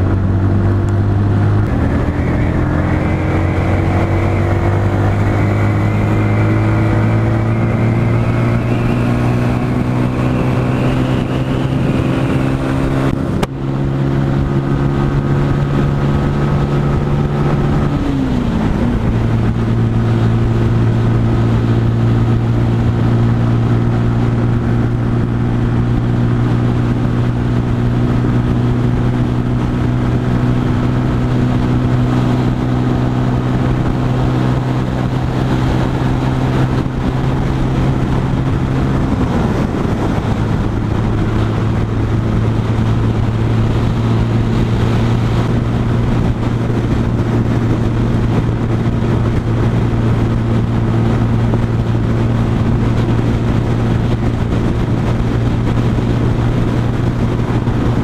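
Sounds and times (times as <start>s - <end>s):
motorcycle engine running: 0.0s - 58.0s.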